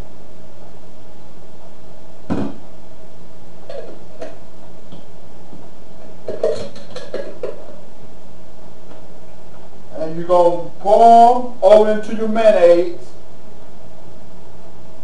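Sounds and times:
steady hum: 0.0s - 15.0s.

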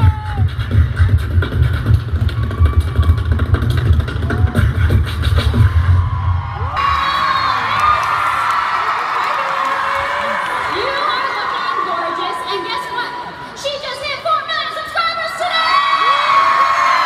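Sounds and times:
crowd cheering and screaming: 0.0s - 0.6s, 2.2s - 13.8s, 15.1s - 17.0s
beatboxing into a microphone: 0.0s - 5.8s.

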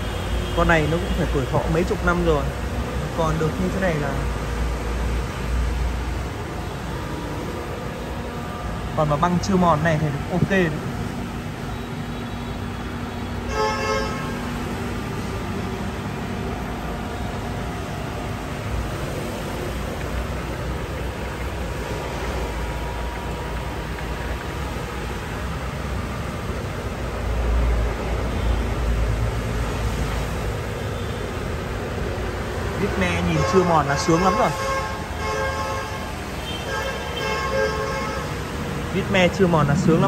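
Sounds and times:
low rumble: 39.1s - 40.0s.

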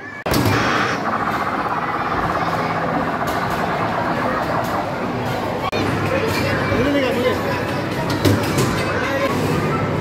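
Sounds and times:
arcade game machines humming: 0.0s - 10.0s
chatter: 0.0s - 10.0s.

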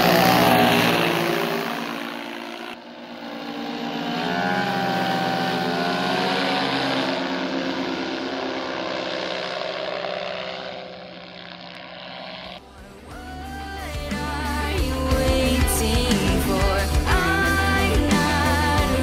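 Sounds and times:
paramotor engine droning overhead: 0.0s - 19.0s.

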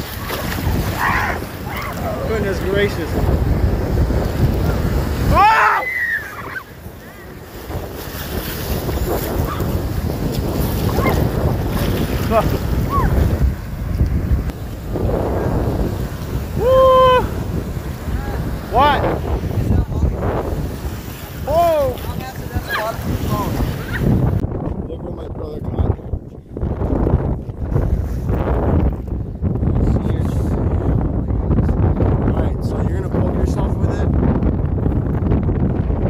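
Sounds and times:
ocean surf breaking: 0.0s - 24.4s
wind buffeting microphone: 0.0s - 36.0s
person shouting: 5.3s - 6.4s, 16.6s - 17.4s.

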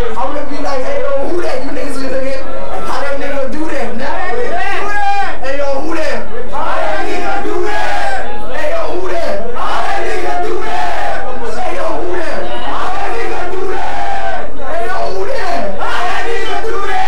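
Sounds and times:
crowd shouting: 1.6s - 17.0s.

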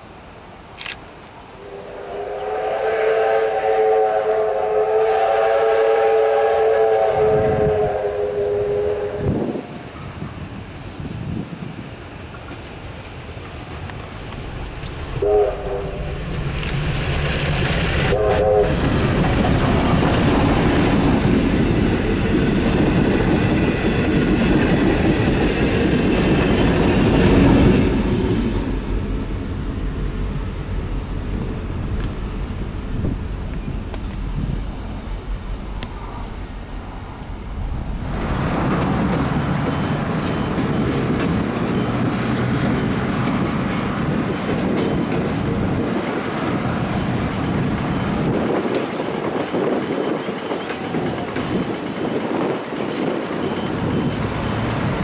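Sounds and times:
train rumbling on rails: 1.5s - 55.0s
steam locomotive whistle: 1.6s - 10.1s, 15.2s - 16.2s, 18.0s - 19.6s.

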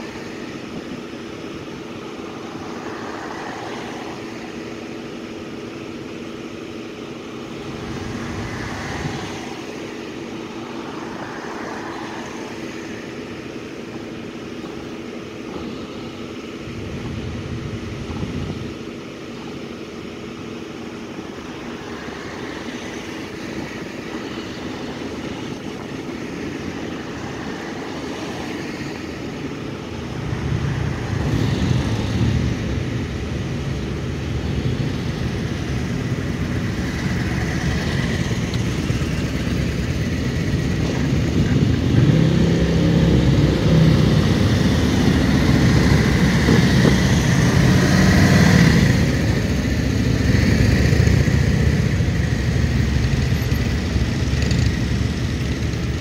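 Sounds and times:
motorcycle engines at low speed: 0.0s - 56.0s
vehicles passing: 0.0s - 56.0s.

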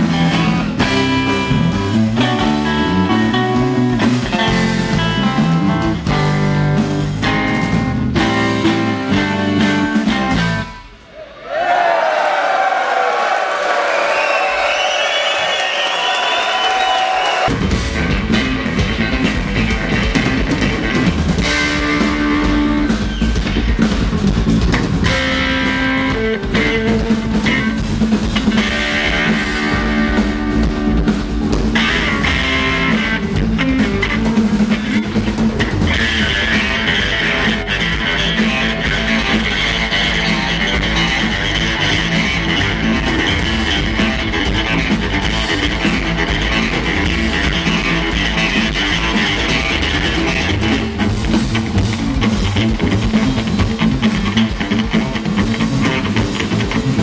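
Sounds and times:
electric guitar: 0.0s - 11.0s, 17.2s - 57.0s
bass guitar: 0.0s - 11.1s, 17.4s - 57.0s
drums: 0.0s - 57.0s.

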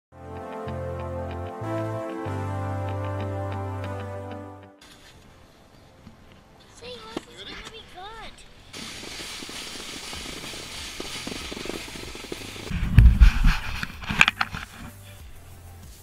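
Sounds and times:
plastic sled sliding over snow: 6.7s - 15.1s
sled thumping and clattering: 6.8s - 14.8s.

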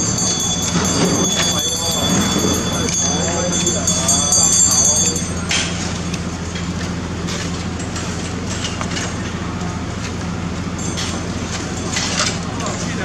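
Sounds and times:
faint voices: 0.0s - 6.5s, 11.6s - 13.0s
low hum and rumble: 0.0s - 13.0s.

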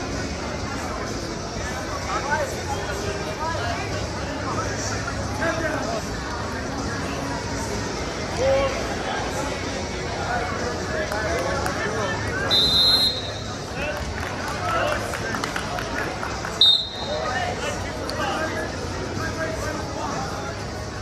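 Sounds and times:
spectators' voices and shouts: 0.0s - 21.0s
referee's whistle blasts: 12.5s - 13.5s, 16.6s - 17.2s.

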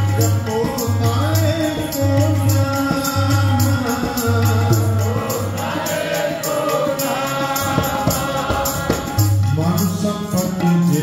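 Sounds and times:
harmonium chords: 0.0s - 11.0s
tabla drums: 0.0s - 11.0s
group singing a hymn: 3.8s - 9.4s.

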